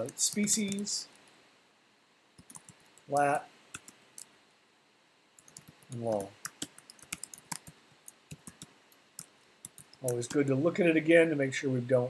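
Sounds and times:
computer keyboard keys clicking: 0:00.0 - 0:01.2, 0:02.4 - 0:03.0, 0:05.4 - 0:10.4.

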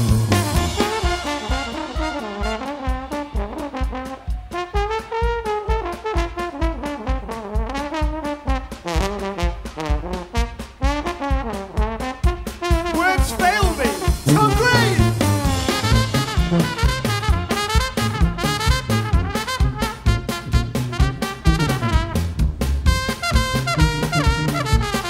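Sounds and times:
trombone solo: 0:00.0 - 0:25.0
drum beat: 0:12.5 - 0:25.0
low bass notes: 0:13.3 - 0:17.5.

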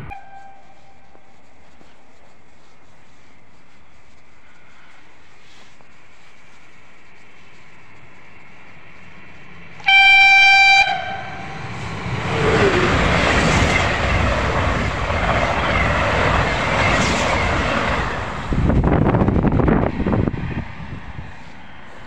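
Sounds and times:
train horn blast: 0:00.0 - 0:01.3, 0:09.8 - 0:11.8
train rushing past: 0:08.7 - 0:22.0
wheels clattering on rails: 0:11.3 - 0:19.6.

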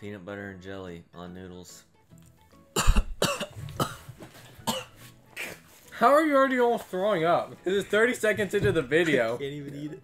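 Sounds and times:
person coughing and gagging: 0:02.7 - 0:05.6.

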